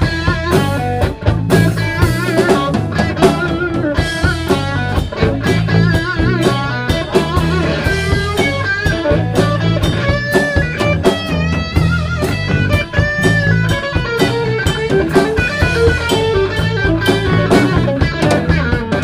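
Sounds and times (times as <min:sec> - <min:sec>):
bass guitar line: 0:00.0 - 0:19.0
drum kit beat: 0:00.0 - 0:19.0
electric guitar lead notes: 0:00.0 - 0:19.0.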